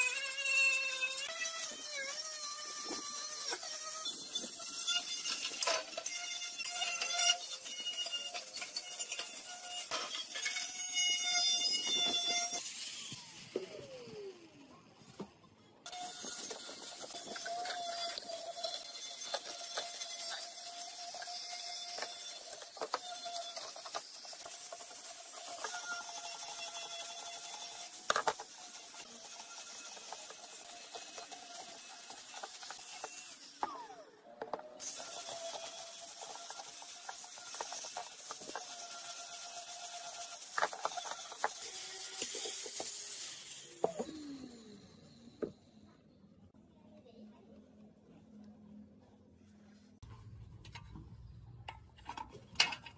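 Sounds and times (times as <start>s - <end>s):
angle grinder on steel: 0.0s - 14.6s, 15.9s - 45.5s.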